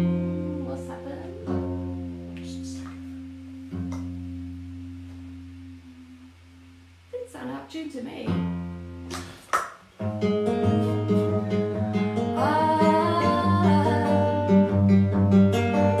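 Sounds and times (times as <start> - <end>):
acoustic guitar strumming: 0.0 - 7.0, 8.2 - 9.4, 10.0 - 16.0.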